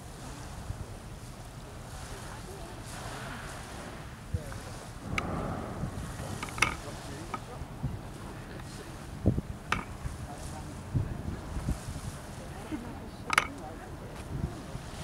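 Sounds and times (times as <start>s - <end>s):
wind buffeting microphone: 0.0s - 15.0s
sharp clicks and knocks: 6.4s - 7.4s.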